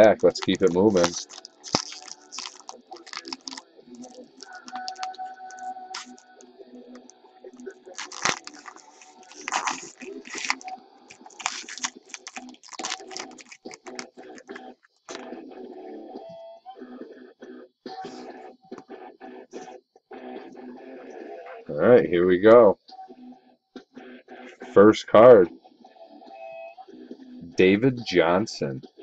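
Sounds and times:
plastic wrapping crinkling and tearing: 0.0s - 15.2s
faint music: 0.0s - 29.0s.

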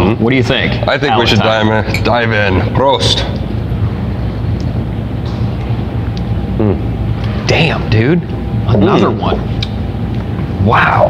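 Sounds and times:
low hum: 0.0s - 11.0s
man murmuring: 6.6s - 6.9s.

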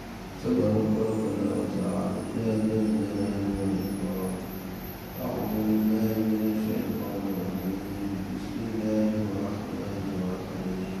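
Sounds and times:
man chanting over loudspeaker: 0.4s - 11.0s.

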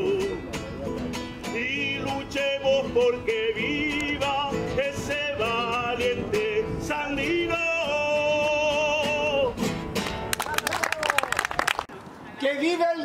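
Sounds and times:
man singing: 0.0s - 0.6s, 1.4s - 9.7s
acoustic guitar: 0.0s - 10.4s
hand clapping: 10.0s - 11.9s.

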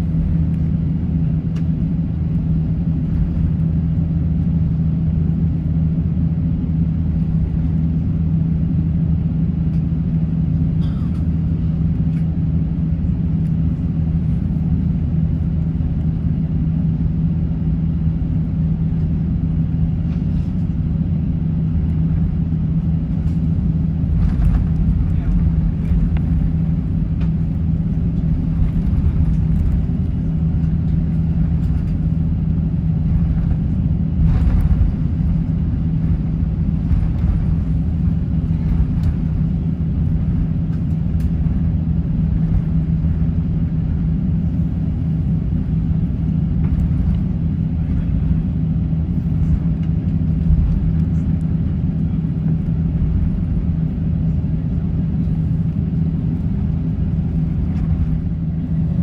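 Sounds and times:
aircraft cabin rumble: 0.0s - 59.0s
jet engines idling hum: 0.0s - 59.0s.

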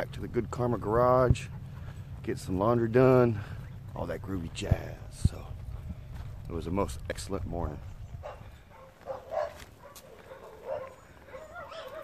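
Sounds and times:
dog whining and yipping: 10.7s - 12.0s.

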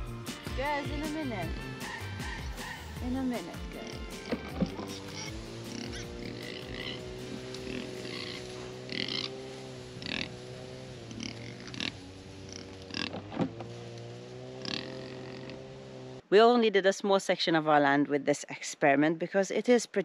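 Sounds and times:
pigs grunting and squealing: 1.4s - 13.3s, 14.6s - 15.8s.

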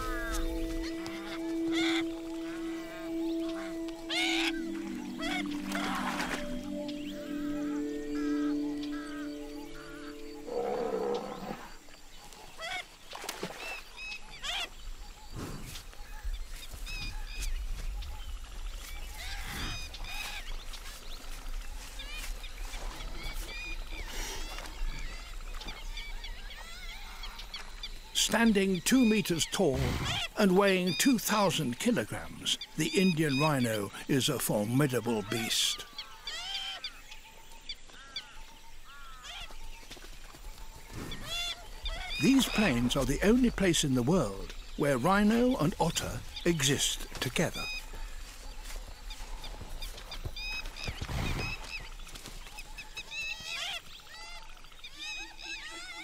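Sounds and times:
background music with held notes: 0.0s - 11.5s, 42.2s - 47.6s
otters calling: 0.0s - 11.8s, 23.0s - 56.0s.

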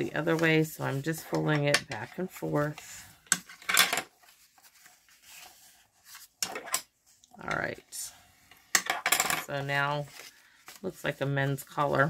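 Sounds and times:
cardstock folding crinkles: 0.0s - 8.7s, 9.5s - 12.0s.

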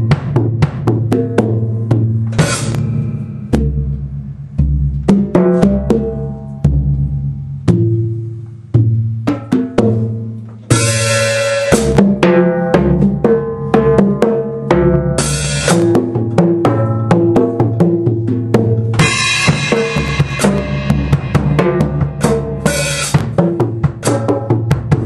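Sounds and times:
bass drum: 0.0s - 25.0s
tom drum strokes: 0.0s - 25.0s
cymbal crashes: 2.3s - 5.8s, 10.7s - 12.1s, 19.0s - 24.2s
snare drum: 18.9s - 25.0s.

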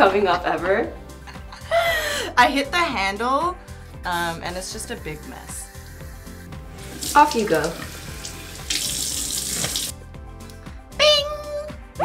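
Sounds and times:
sink tap running: 4.8s - 9.9s
water splashing: 6.8s - 9.9s.

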